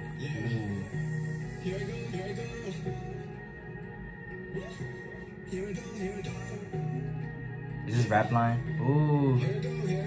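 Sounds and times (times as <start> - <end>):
man singing over backing track: 0.0 - 3.4, 4.4 - 10.0.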